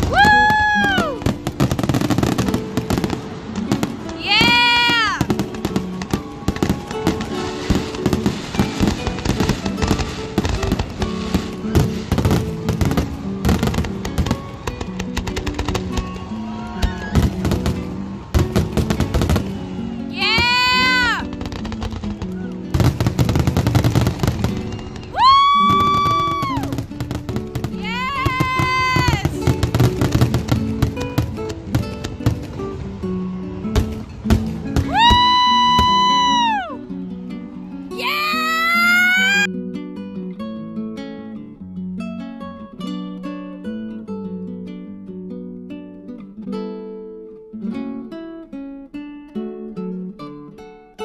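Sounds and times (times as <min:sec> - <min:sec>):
fireworks bangs and crackling: 0:00.0 - 0:36.7
music playing: 0:00.0 - 0:46.2
loud high firework whistles: 0:24.0 - 0:26.7.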